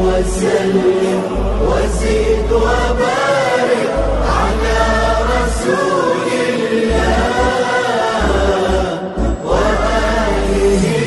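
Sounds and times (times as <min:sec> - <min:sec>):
voices singing a chant: 0:00.0 - 0:11.0.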